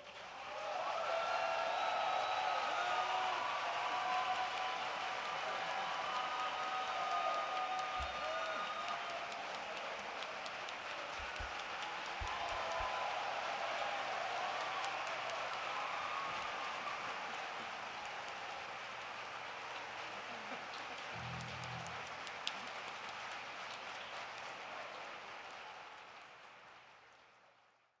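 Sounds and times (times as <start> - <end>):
audience applauding: 0.0 - 27.8.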